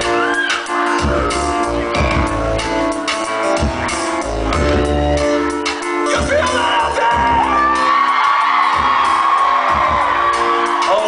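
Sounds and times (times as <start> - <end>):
electronic keyboard chords: 0.0 - 11.0
low beat: 0.9 - 7.9, 8.7 - 10.8.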